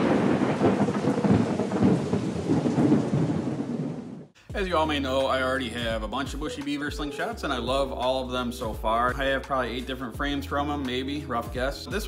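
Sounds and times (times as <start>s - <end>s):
rumbling crackling noise: 0.0s - 4.4s.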